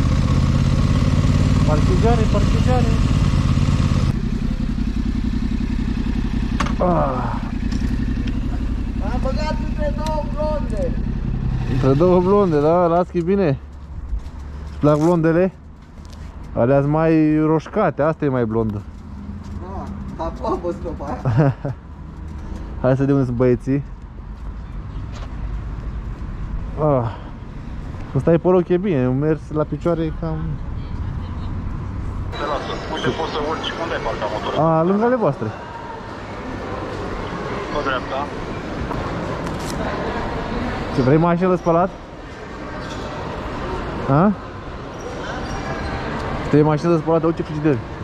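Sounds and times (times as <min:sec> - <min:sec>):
motorcycle engine idling: 0:00.0 - 0:12.6
motor vehicles rumbling: 0:00.0 - 0:48.0.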